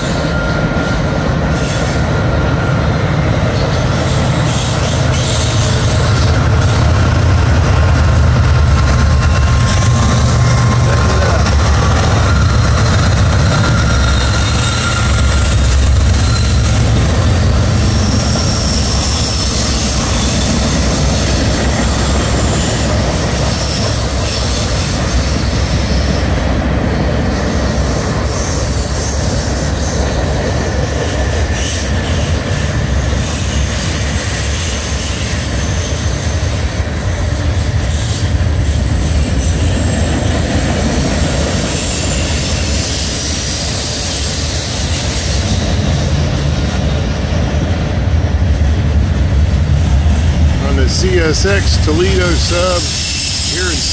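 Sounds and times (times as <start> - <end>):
faint high wheel squeal: 0.0 - 7.1, 9.3 - 47.1, 50.6 - 53.9
train wheels rumbling on rail: 0.0 - 53.9.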